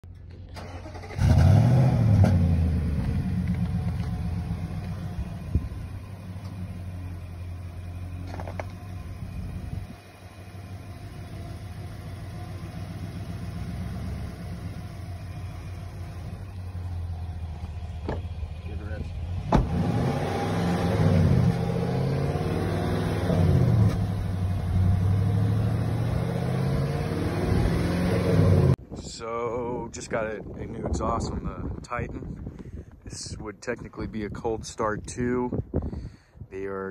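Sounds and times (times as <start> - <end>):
truck engine starting and revving: 0.3 - 28.8.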